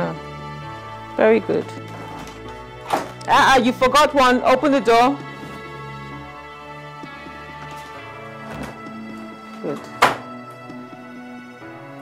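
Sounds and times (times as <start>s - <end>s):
background music sustained tones: 0.0s - 12.0s
door being shut: 2.8s - 3.2s, 8.5s - 8.8s, 9.8s - 10.4s.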